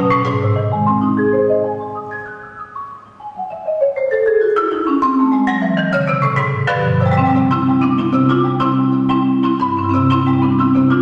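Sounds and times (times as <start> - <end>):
marimba played with mallets: 0.0 - 11.0.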